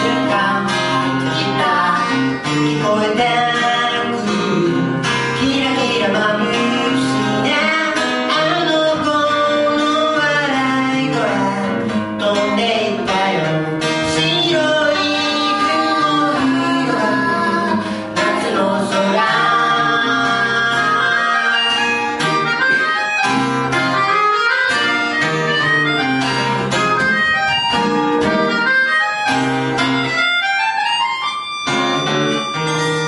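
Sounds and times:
acoustic guitar strumming: 0.0s - 33.0s
melodica melody: 14.0s - 33.0s.

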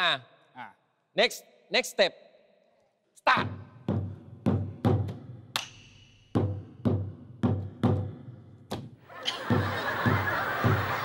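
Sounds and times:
barrel drum beaten with sticks: 3.4s - 5.7s, 6.3s - 8.9s.

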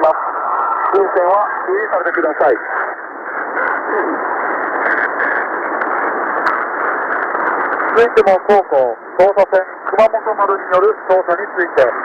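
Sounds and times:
man speaking over radio: 0.0s - 0.2s, 0.9s - 2.8s, 3.6s - 4.3s, 7.9s - 12.0s
radio static: 0.0s - 12.0s.

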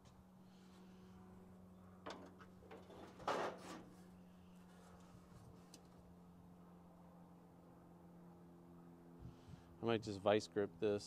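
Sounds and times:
short metal scrape: 2.7s - 5.1s.

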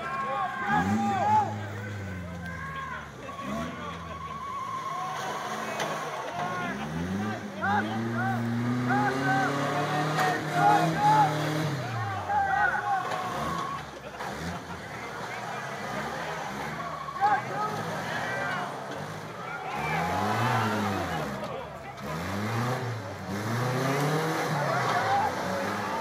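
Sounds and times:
truck engines revving: 0.0s - 26.0s.

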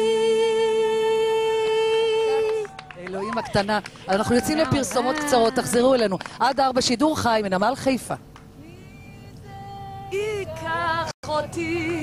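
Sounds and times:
woman singing a long note: 0.0s - 2.9s.

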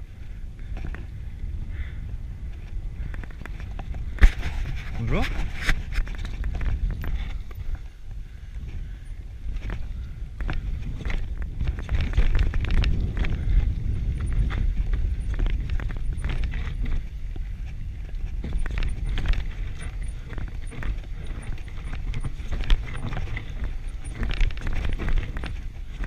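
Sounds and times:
bike clicks and rattles: 0.0s - 26.0s
tyres rumbling on dirt trail: 0.0s - 26.0s.

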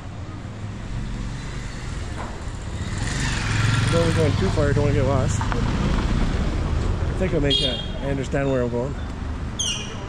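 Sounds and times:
low traffic rumble: 0.0s - 10.0s
motorcycle passing: 0.6s - 8.0s.

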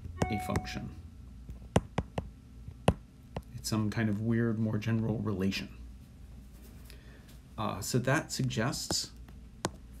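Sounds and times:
stylus tapping on glass screen: 0.2s - 0.8s, 1.7s - 3.5s.

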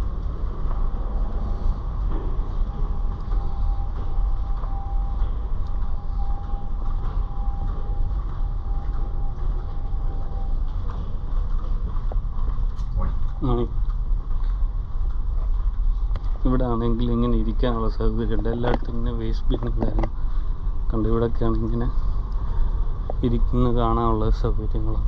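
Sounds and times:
faint steady whine: 0.0s - 25.0s
ship engine rumble: 0.0s - 25.0s.

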